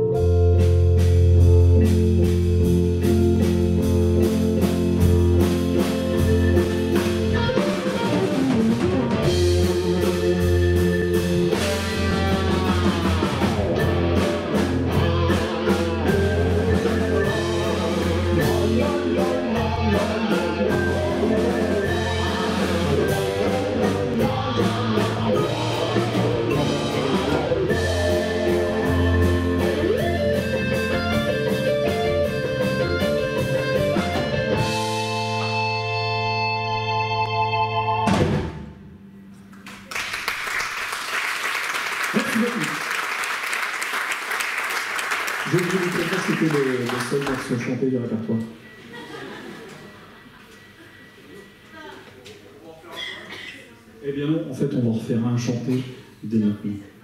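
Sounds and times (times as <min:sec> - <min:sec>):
drums: 0:00.0 - 0:37.2, 0:37.8 - 0:47.7
electric guitar lead: 0:00.0 - 0:39.5
keyboards: 0:00.0 - 0:39.8, 0:45.4 - 0:52.5
bass: 0:00.0 - 0:40.4.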